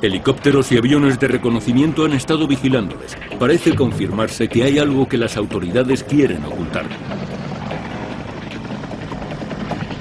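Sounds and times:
helicopter rotor drone: 0.0 - 10.0.

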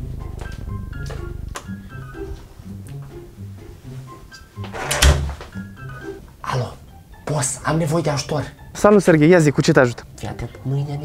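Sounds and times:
background music: 0.0 - 11.0
door being shut: 4.6 - 5.6.

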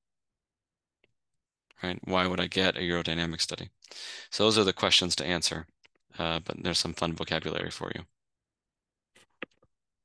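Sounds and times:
man speaking: 1.8 - 5.6, 6.2 - 8.1.

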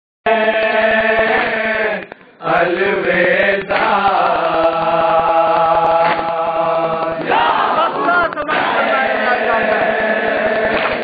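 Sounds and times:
men chanting together: 0.3 - 11.0
rhythmic chest-beating strikes: 0.3 - 11.0.

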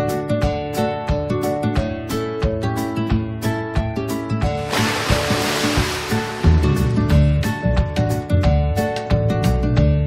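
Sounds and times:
plucked background music: 4.4 - 8.6
rushing whoosh: 4.6 - 7.2.

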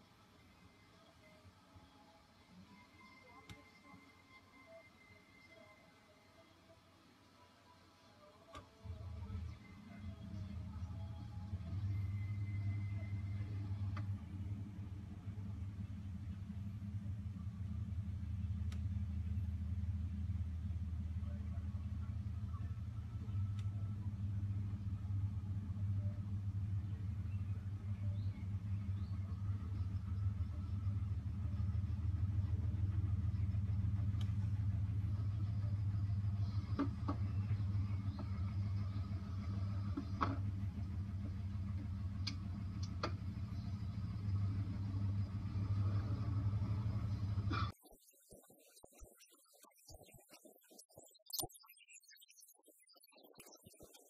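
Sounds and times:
vehicle engine idling: 8.4 - 47.7
faint clicks: 18.6 - 19.0, 23.2 - 23.8, 34.1 - 34.4, 42.2 - 43.2.

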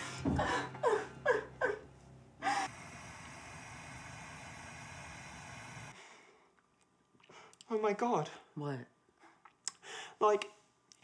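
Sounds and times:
steady hiss: 2.6 - 6.0.

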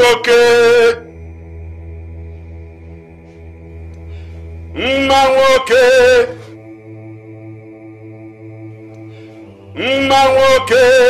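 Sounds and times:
man's voice holding a word: 0.0 - 1.1, 4.7 - 6.5, 9.8 - 11.0
low droning background music: 0.0 - 11.0.

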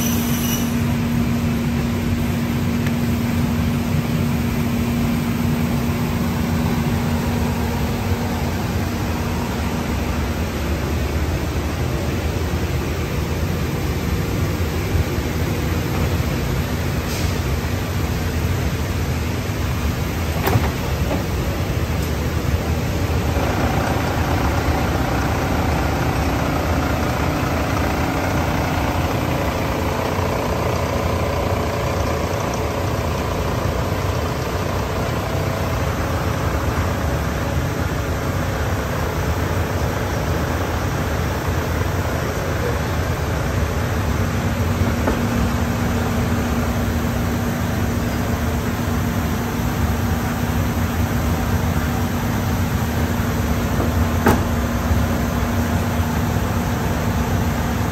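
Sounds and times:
high-pitched machine whine: 0.0 - 57.9
paper-cutting machinery hum: 0.0 - 57.9.

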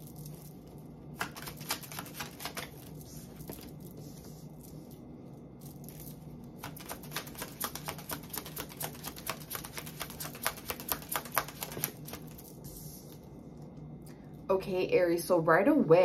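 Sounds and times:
cards being shuffled by hand: 0.0 - 5.0, 5.6 - 13.3.

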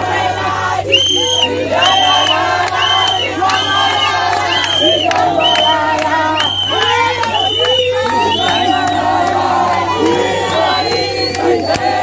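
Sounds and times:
crowd singing and cheering: 0.0 - 12.0.

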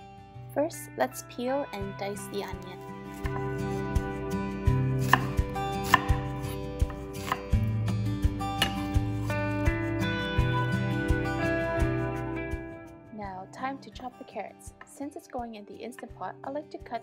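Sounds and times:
background music: 0.0 - 17.0
knife chopping on wooden board: 4.9 - 7.8, 8.5 - 9.3.

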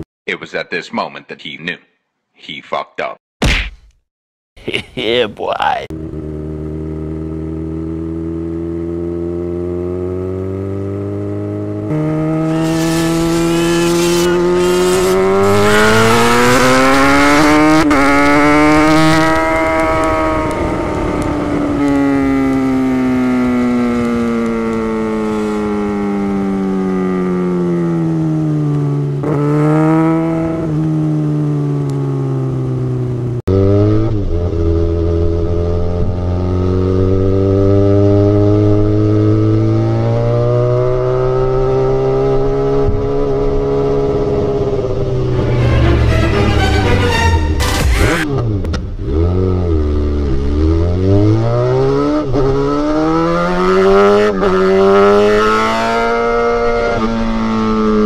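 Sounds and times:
motorcycle engine revving: 5.9 - 58.0.

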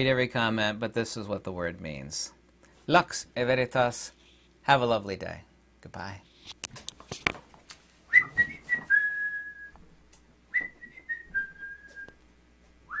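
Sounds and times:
person whistling a tune: 8.1 - 9.8, 10.5 - 12.1.

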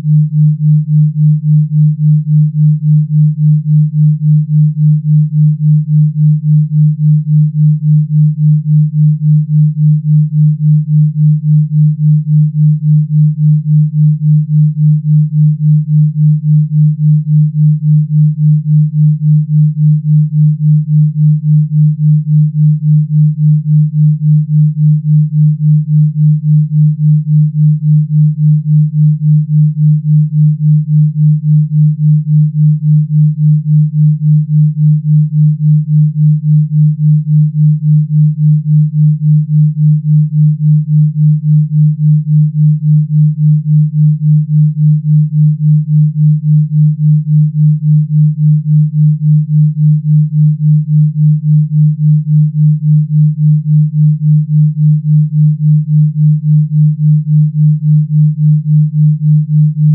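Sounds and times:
pulsing low sine tone: 0.0 - 59.9.

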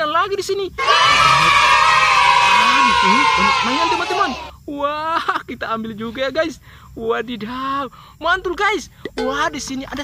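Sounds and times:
children cheering and whooping: 0.8 - 4.5.

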